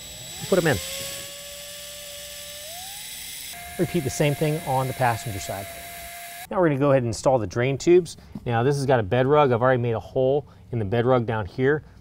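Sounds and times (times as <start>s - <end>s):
drill driving screw into metal: 0.0s - 6.5s.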